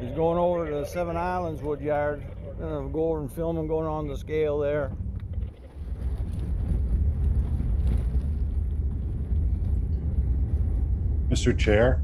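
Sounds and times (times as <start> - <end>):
wind buffeting microphone: 0.0 - 12.0
truck rumbling on gravel road: 1.3 - 11.2.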